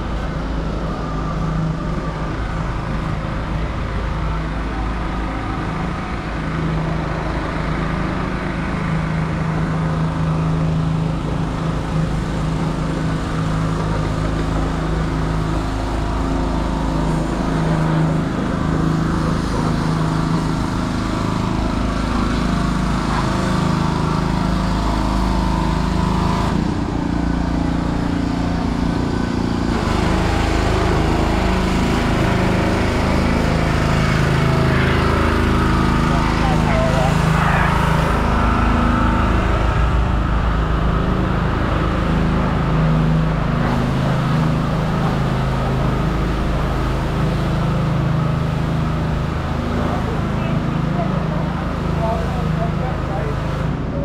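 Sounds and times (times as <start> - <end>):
engine drone: 0.0 - 54.0
passing vehicles rumbling: 0.0 - 54.0.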